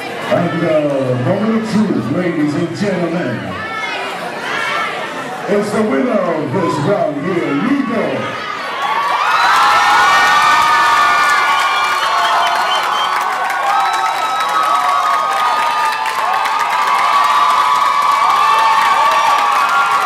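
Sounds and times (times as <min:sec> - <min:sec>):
audience cheering and screaming: 0:07.5 - 0:20.0.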